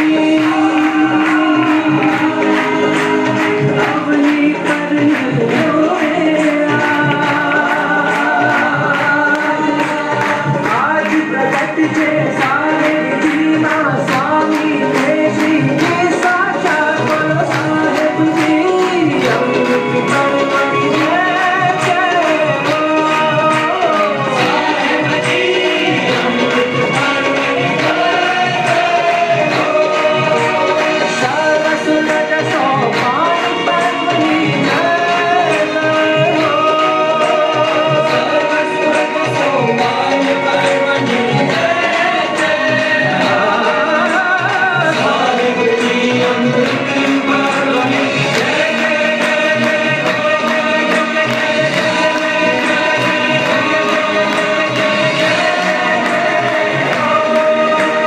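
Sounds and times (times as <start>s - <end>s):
group singing devotional song: 0.0s - 58.0s
repeating percussion beat: 0.0s - 58.0s.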